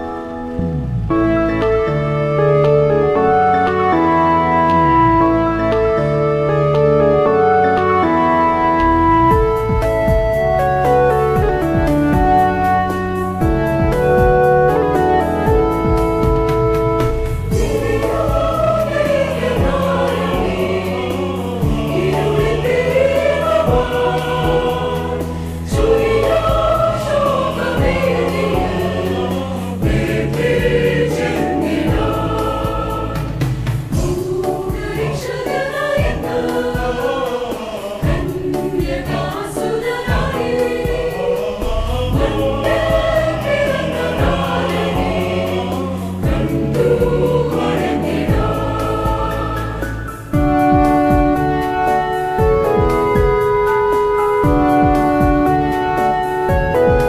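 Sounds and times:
mixed choir singing carol: 0:06.4 - 0:57.0.

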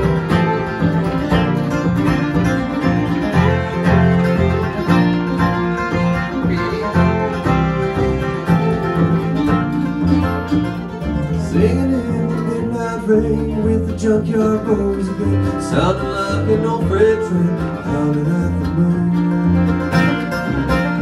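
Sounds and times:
acoustic guitars: 0:00.0 - 0:21.0
fiddle: 0:00.0 - 0:21.0
mandolin: 0:00.0 - 0:21.0
upright bass: 0:00.0 - 0:21.0.

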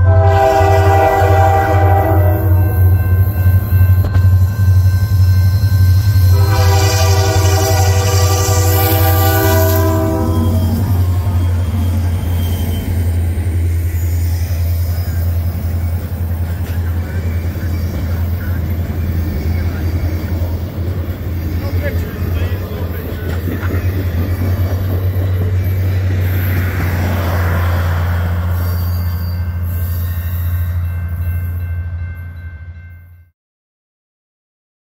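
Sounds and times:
locomotive air horn: 0:00.0 - 0:03.0, 0:06.0 - 0:12.8
train wheels on rails: 0:00.8 - 0:32.5.

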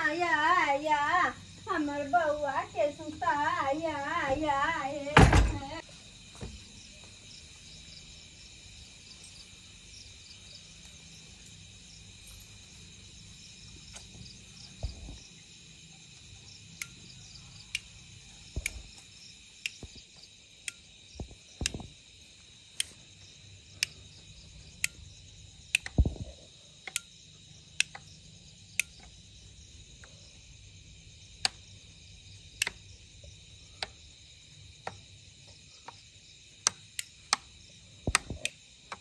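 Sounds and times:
insect chirring: 0:00.0 - 0:39.0
dull thumps: 0:05.2 - 0:05.8
sharp ticks: 0:16.7 - 0:20.0, 0:20.6 - 0:22.0, 0:22.7 - 0:23.0, 0:23.7 - 0:24.0, 0:24.8 - 0:26.2, 0:26.8 - 0:29.2, 0:32.5 - 0:32.9, 0:33.8 - 0:34.1, 0:34.8 - 0:35.1, 0:36.6 - 0:39.0.

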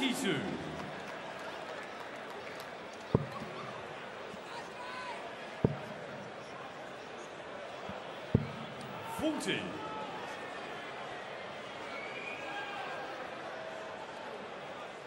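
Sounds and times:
murmur of voices in hall: 0:00.0 - 0:15.0.

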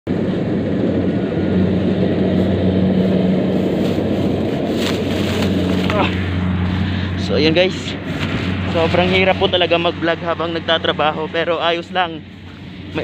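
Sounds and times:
low motor hum: 0:00.1 - 0:13.0
rough rumbling on microphone: 0:00.1 - 0:13.0.

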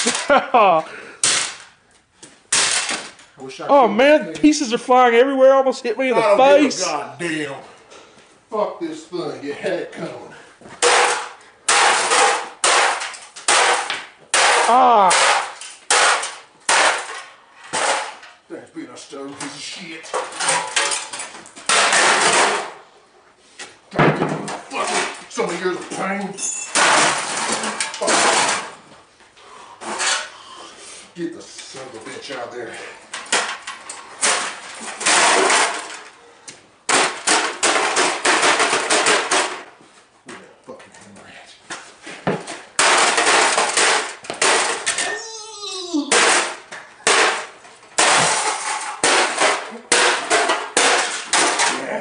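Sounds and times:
computer smashing crash: 0:26.7 - 0:28.8, 0:34.2 - 0:36.0, 0:36.9 - 0:39.7, 0:42.8 - 0:45.1, 0:46.1 - 0:51.8.

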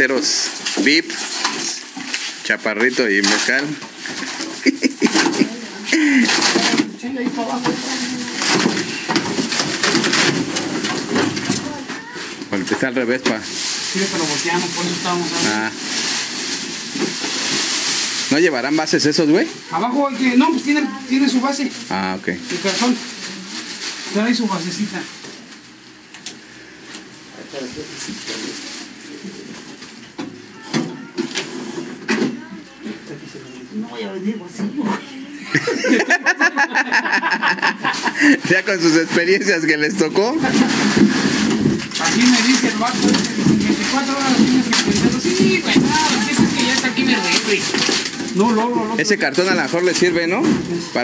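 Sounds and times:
plastic film crinkling: 0:00.0 - 0:33.1, 0:37.0 - 0:51.0
people talking: 0:42.0 - 0:47.7.

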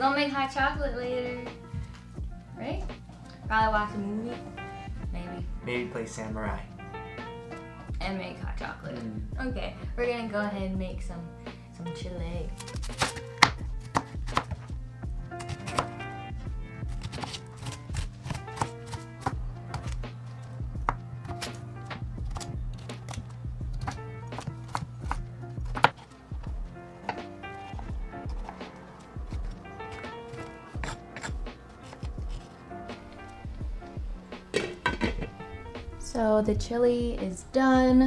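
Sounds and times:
background music: 0:00.0 - 0:38.0
knife chopping on cutting board: 0:12.6 - 0:14.7, 0:15.4 - 0:16.0, 0:16.9 - 0:20.0, 0:23.8 - 0:26.1, 0:29.3 - 0:32.5.

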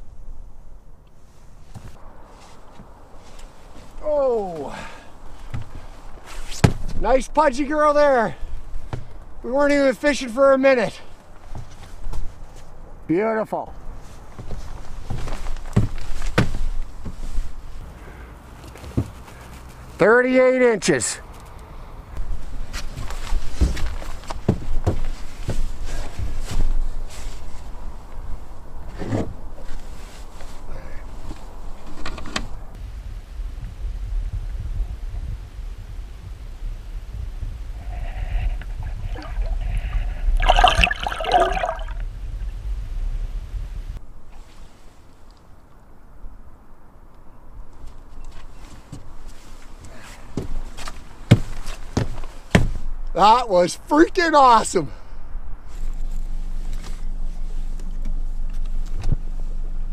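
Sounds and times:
low rumble of water on camera: 0:32.8 - 0:44.0
water sloshing and trickling: 0:38.7 - 0:42.0.

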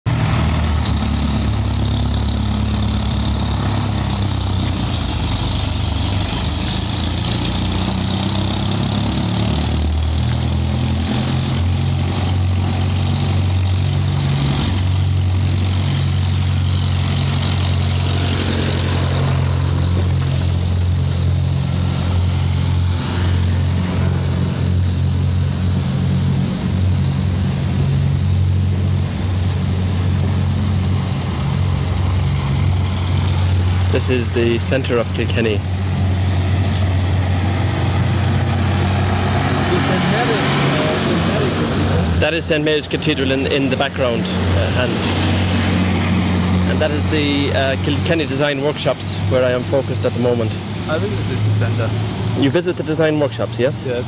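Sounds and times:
street traffic engine hum: 0:00.0 - 0:54.0
tractor engine passing: 0:00.1 - 0:54.0.

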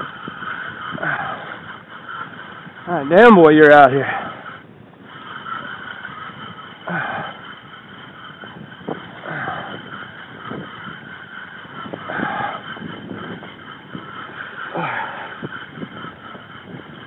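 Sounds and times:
wind on microphone: 0:00.0 - 0:17.0.

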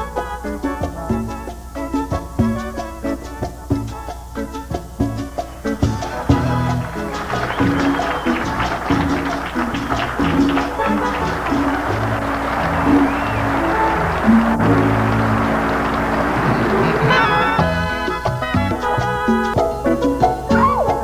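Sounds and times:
bass notes: 0:00.0 - 0:21.0
band with electric guitars: 0:02.5 - 0:21.0.

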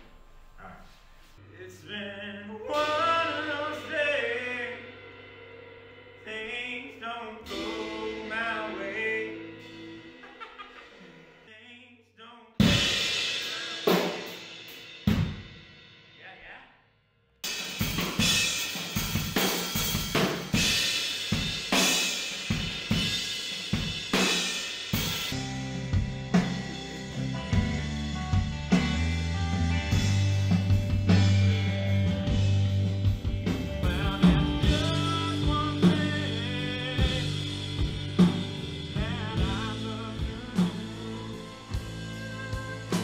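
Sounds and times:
bass and guitar: 0:01.4 - 0:10.5, 0:17.8 - 0:43.0
drum and cymbal hits: 0:02.7 - 0:10.7, 0:12.6 - 0:16.3, 0:17.4 - 0:43.0
drum kit beat: 0:02.7 - 0:11.3, 0:12.6 - 0:16.3, 0:17.4 - 0:43.0.

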